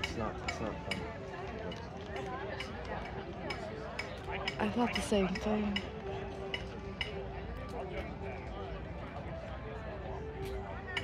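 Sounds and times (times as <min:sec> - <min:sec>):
people talking: 0:00.0 - 0:05.9.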